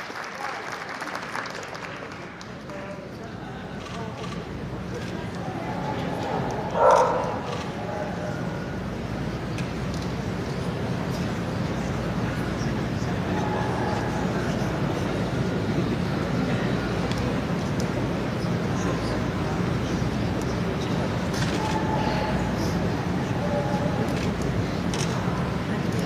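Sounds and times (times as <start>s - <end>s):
murmur of audience: 0.0s - 26.0s
dog barking: 6.3s - 7.5s.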